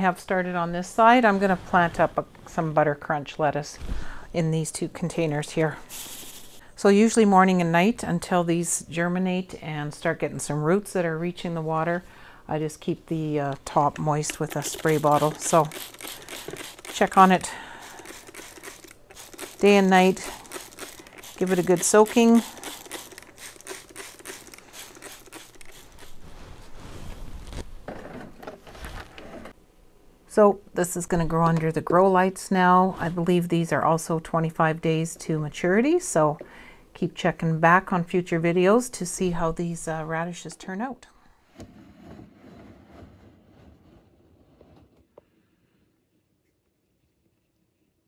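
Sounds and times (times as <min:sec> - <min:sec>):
spray bottle squirting: 0:05.9 - 0:06.6, 0:14.3 - 0:26.2
rustling handling noise: 0:14.3 - 0:29.5.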